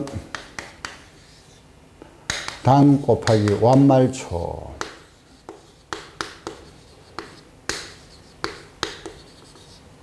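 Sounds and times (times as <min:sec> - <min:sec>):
chalk tapping on chalkboard: 0:00.0 - 0:01.6, 0:02.3 - 0:04.0, 0:04.7 - 0:09.8.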